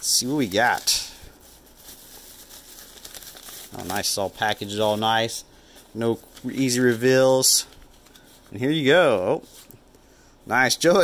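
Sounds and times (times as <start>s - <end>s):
bubble-wrap pouch crinkling: 0.1s - 5.4s.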